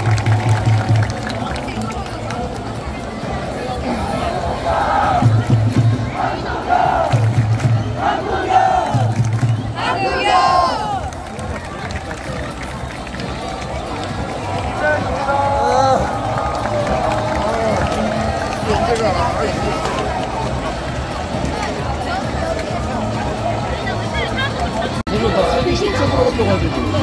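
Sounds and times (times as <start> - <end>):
scattered crowd voices: 0.0 - 27.0
crowd shouting: 2.9 - 27.0
crowd chanting in unison: 3.3 - 11.0
low drum beats: 5.0 - 8.1, 8.7 - 9.8.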